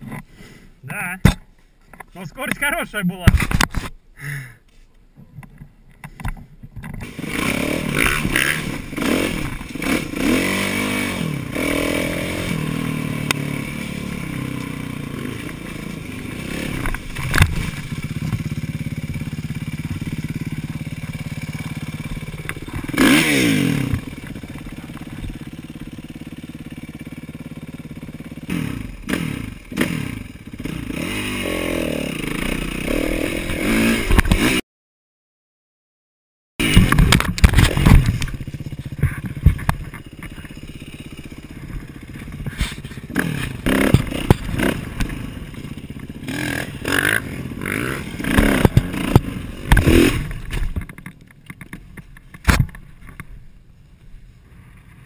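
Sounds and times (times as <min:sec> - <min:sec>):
motorbike engine revving: 0:07.0 - 0:34.6, 0:36.6 - 0:51.7
scraping knocks on rough ground: 0:16.7 - 0:20.2, 0:36.6 - 0:40.6, 0:48.2 - 0:53.4
sharp clatter: 0:36.6 - 0:53.4.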